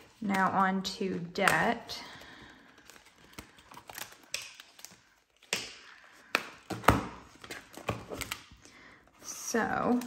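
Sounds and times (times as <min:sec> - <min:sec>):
plastic pouch rustling: 0:00.0 - 0:10.0.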